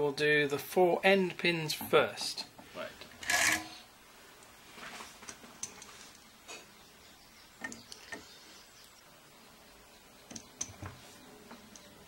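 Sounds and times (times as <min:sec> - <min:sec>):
quiet room hiss: 0:00.0 - 0:12.0.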